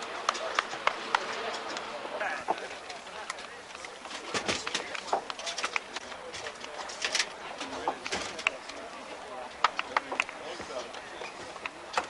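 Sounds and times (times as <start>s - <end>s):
indistinct voices outdoors: 0.0s - 12.0s
sharp clicks and knocks: 0.2s - 8.8s, 9.5s - 12.0s.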